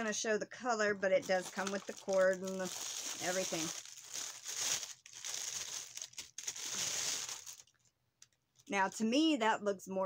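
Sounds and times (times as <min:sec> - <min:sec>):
packaging crinkling and rustling: 0:01.1 - 0:08.7.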